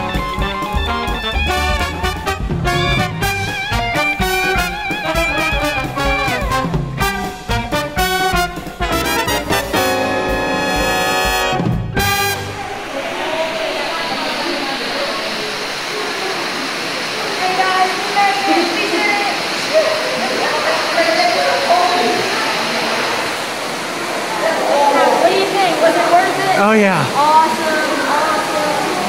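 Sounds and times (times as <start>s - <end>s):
music: 0.0s - 12.9s
underground waterfall rushing: 0.0s - 29.0s
people talking: 12.6s - 23.1s, 24.3s - 29.0s.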